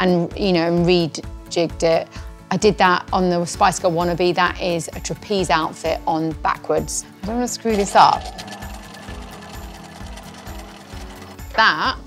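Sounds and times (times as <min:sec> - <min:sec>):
background music with steady beat: 0:00.0 - 0:12.0
sewing machine running: 0:07.7 - 0:11.6.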